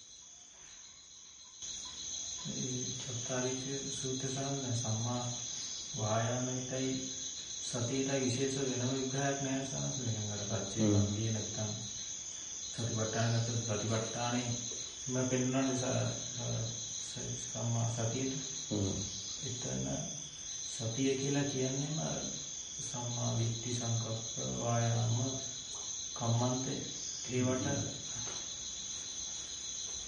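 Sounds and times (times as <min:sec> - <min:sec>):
insects chirring: 0:00.0 - 0:30.0
man speaking: 0:02.4 - 0:05.4, 0:06.0 - 0:07.1, 0:07.7 - 0:11.9, 0:12.8 - 0:25.5, 0:26.2 - 0:28.1.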